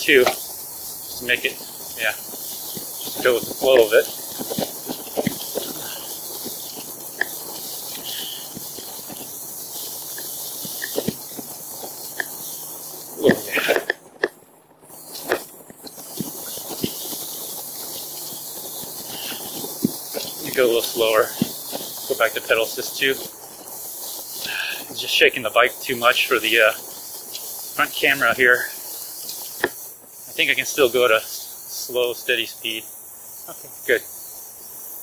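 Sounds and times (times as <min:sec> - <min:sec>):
grass swishing against bike: 0:00.0 - 0:35.0.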